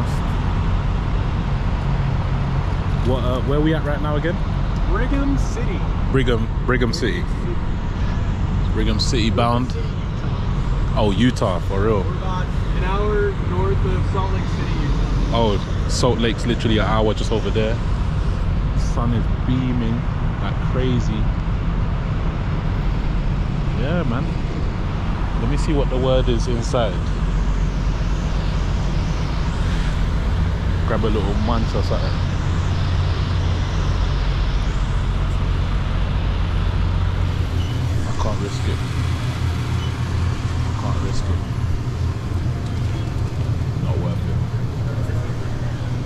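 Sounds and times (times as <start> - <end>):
road traffic rumble: 0.0 - 46.0
man's voice: 11.0 - 17.8.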